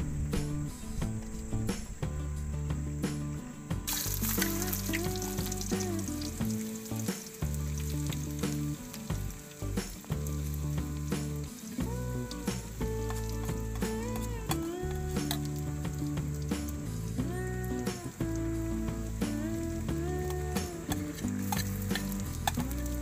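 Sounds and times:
music playing: 0:00.0 - 0:23.0
food sizzling in hot oil: 0:00.2 - 0:23.0.

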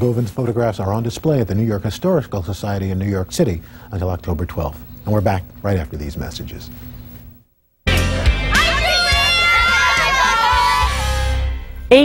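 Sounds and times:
news show bumper music: 0:07.8 - 0:12.0
crowd cheering and shouting: 0:08.0 - 0:11.6.

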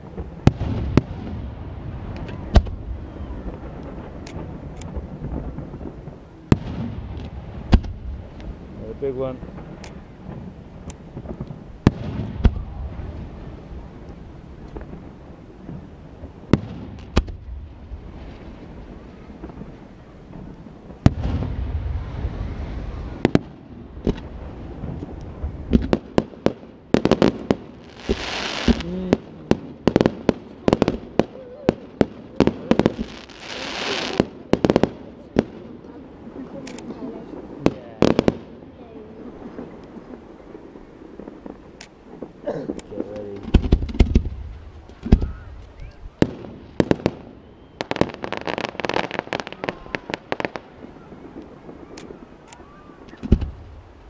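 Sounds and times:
fireworks bursting with bangs: 0:00.0 - 0:54.0
fireworks crackling: 0:00.0 - 0:54.0
fireworks hissing: 0:00.0 - 0:54.0.

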